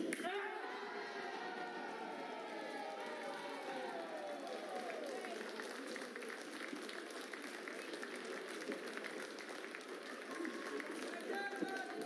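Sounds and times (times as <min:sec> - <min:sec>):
spectators chattering: 0:00.0 - 0:12.0
audience applauding: 0:00.7 - 0:12.0.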